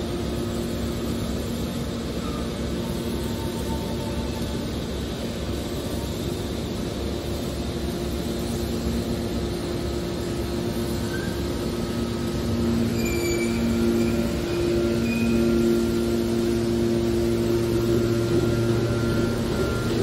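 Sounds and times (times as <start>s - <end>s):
baler machine hum and rumble: 0.0s - 20.0s
faint high squeaks: 11.0s - 11.5s, 12.8s - 15.6s.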